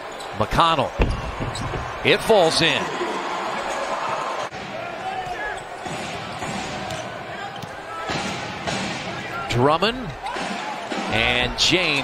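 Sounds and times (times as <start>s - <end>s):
basketball bouncing on hardwood: 1.0s - 1.9s
sneaker squeaks: 1.0s - 2.0s.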